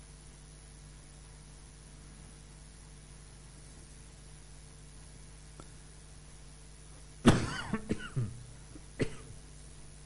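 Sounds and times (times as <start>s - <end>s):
person coughing: 7.3s - 9.4s.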